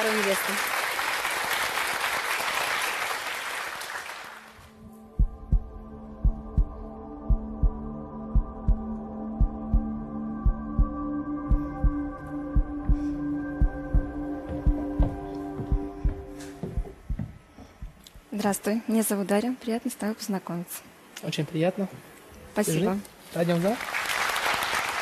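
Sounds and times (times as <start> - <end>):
studio audience applause: 0.0 - 4.7, 23.5 - 25.0
sustained synth chords: 4.8 - 17.1
low heartbeat-like double thump: 5.2 - 18.3.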